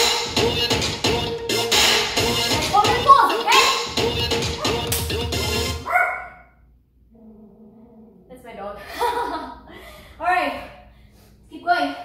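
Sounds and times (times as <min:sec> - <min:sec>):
upbeat dance music: 0:00.0 - 0:05.8
dog barking: 0:05.8 - 0:06.5.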